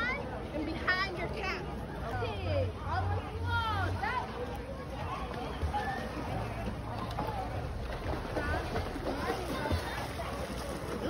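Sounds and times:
faint voices: 0.0 - 11.0
swimmers splashing water: 0.3 - 11.0.

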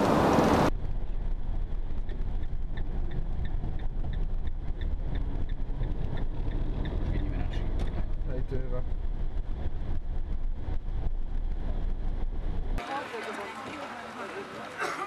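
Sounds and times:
van engine and road rumble: 0.0 - 15.0.

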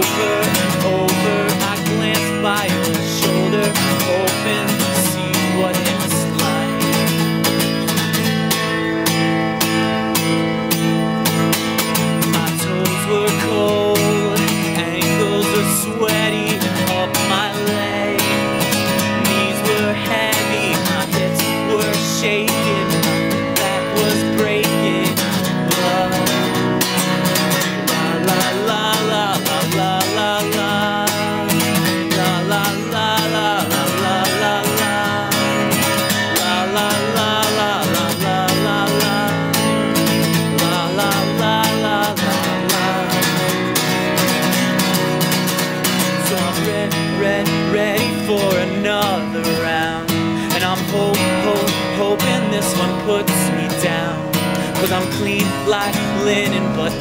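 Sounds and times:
acoustic guitar strumming: 0.0 - 57.0
man singing: 0.0 - 57.0.

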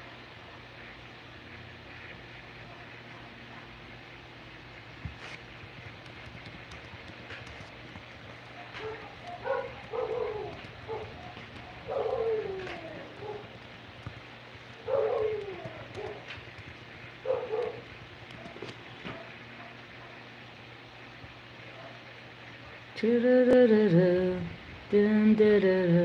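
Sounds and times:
faint steady hum: 0.0 - 26.0
dog barking: 8.6 - 13.6, 14.8 - 16.4, 17.2 - 20.3, 21.7 - 22.0.

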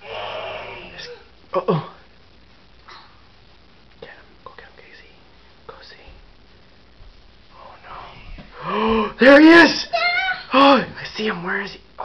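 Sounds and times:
person whispering: 4.0 - 6.2, 7.5 - 9.1.

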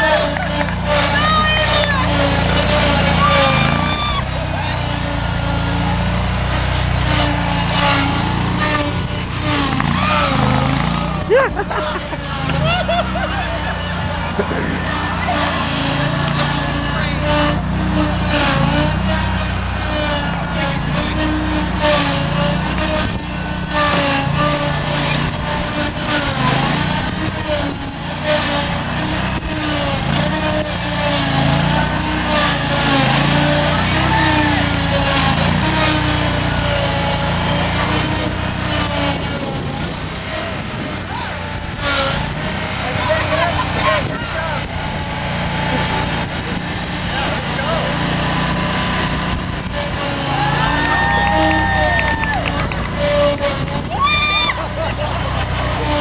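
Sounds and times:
indistinct voices: 0.0 - 56.0
riding lawnmower engine: 0.0 - 56.0.

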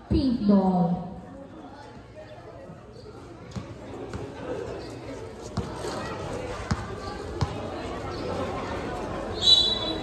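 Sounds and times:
basketball bouncing on court: 3.5 - 4.3, 6.6 - 7.7.

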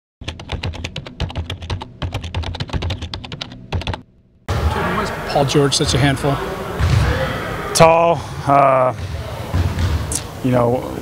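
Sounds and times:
rapid keyboard typing clicks: 0.2 - 4.0.

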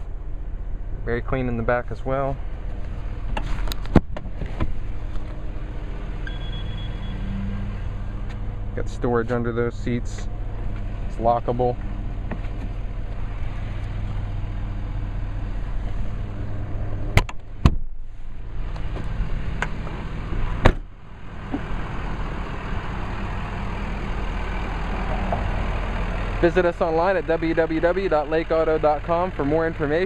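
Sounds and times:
diesel engine idling: 0.0 - 30.0.

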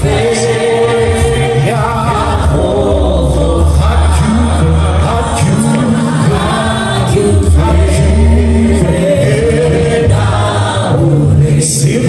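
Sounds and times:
gospel singers singing together: 0.0 - 12.0
sustained low bass notes: 0.0 - 12.0.

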